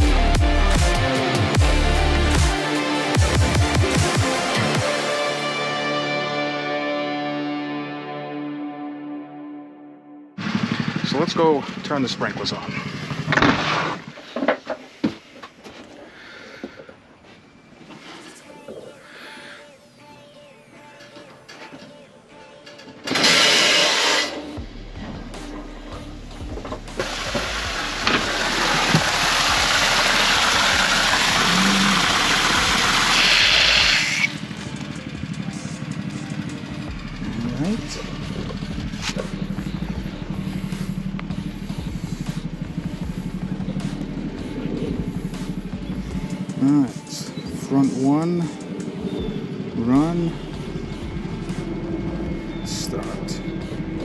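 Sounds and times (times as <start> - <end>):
water gushing onto stone: 27.3 - 33.2.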